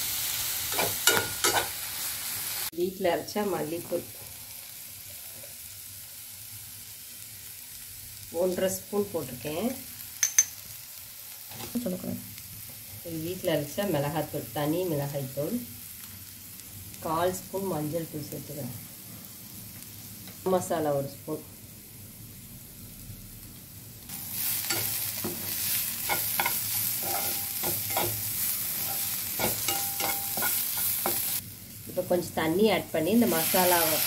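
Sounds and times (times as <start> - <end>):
onion and tomato frying: 0.0 - 34.0
metal spoon scraping and clicking on pan: 0.7 - 1.8, 10.2 - 10.6, 24.6 - 31.4.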